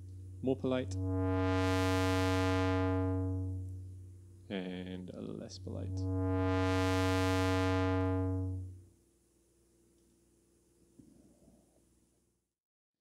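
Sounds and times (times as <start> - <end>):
buzzy synthesizer filter sweep: 0.0 - 8.9.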